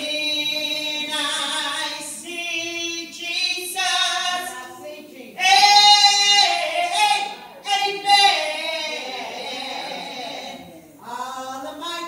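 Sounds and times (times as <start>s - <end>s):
woman singing into microphone: 0.0s - 12.0s.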